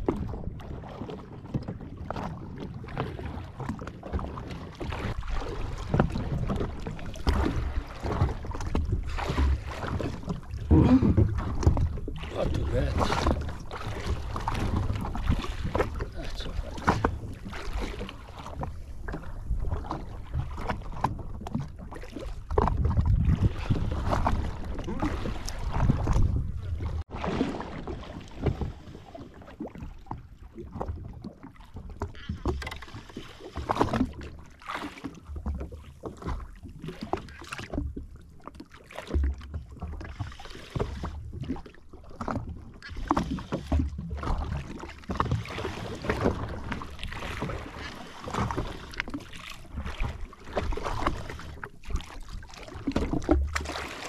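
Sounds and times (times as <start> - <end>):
waves slapping against hull: 0.0 - 54.0
wind buffeting microphone: 22.5 - 27.0.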